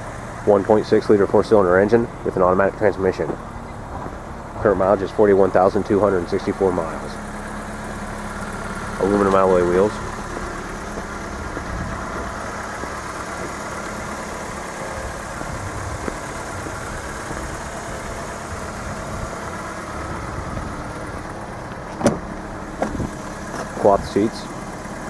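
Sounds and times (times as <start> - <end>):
car engine idling: 0.0 - 25.0.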